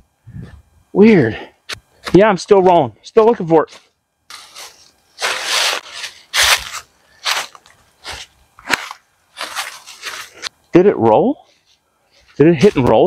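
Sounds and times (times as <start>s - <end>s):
footsteps crunching dry leaves: 3.7s - 10.5s
sharp crack: 8.6s - 9.0s.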